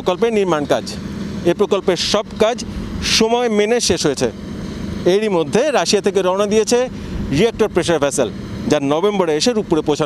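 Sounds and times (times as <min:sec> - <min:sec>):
man speaking: 0:00.0 - 0:04.4, 0:05.0 - 0:10.0
background hum: 0:00.0 - 0:10.0.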